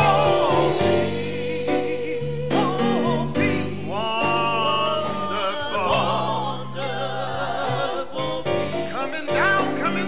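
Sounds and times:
gospel group singing: 0.0 - 10.0.

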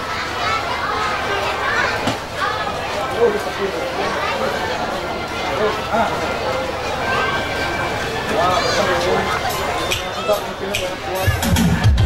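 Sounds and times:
children's voices: 0.0 - 11.9
crowd chatter: 0.0 - 12.0.

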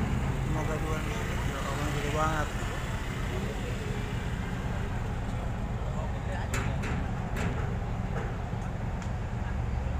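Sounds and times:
steady low rumble: 0.0 - 9.8.

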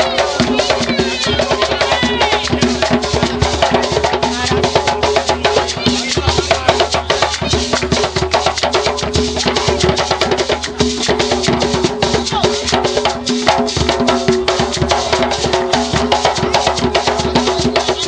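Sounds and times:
hand drums played fast: 0.0 - 18.0.

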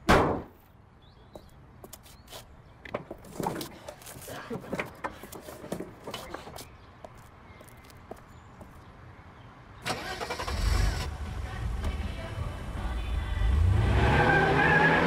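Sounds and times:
car engine starting and revving: 9.8 - 12.0, 13.3 - 15.0.

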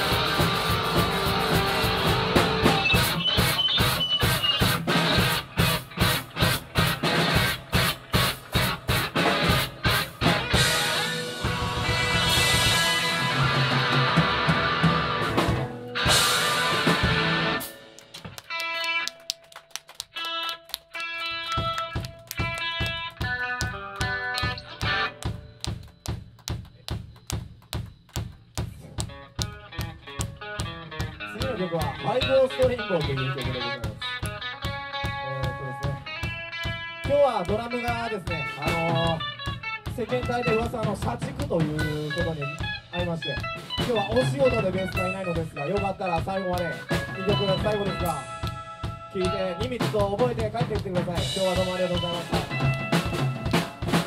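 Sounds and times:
rock band playing live: 0.0 - 26.9, 29.0 - 54.0.

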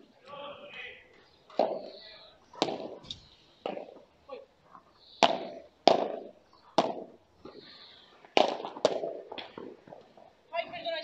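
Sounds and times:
padel ball hits: 1.6 - 2.0, 2.6 - 3.0, 5.2 - 7.2, 8.4 - 9.8.

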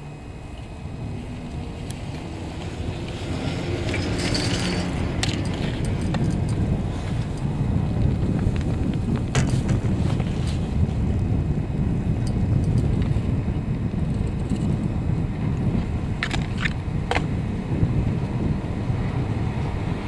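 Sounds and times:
chairlift rumble: 0.0 - 20.0
wind on microphone: 0.0 - 20.0.

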